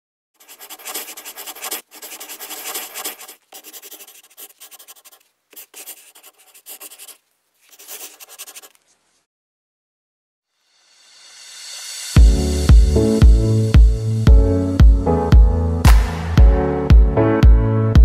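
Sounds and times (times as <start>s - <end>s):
marker scratching on paper: 0.4s - 8.9s.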